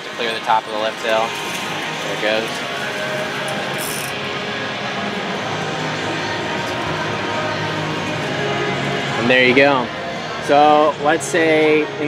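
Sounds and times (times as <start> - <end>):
faint music: 0.0 - 12.0
steady background din: 0.0 - 12.0.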